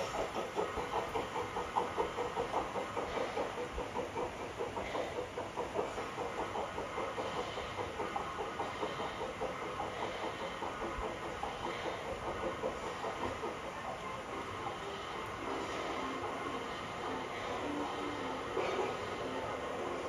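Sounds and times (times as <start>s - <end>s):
model train wheels clicking: 0.0s - 20.0s.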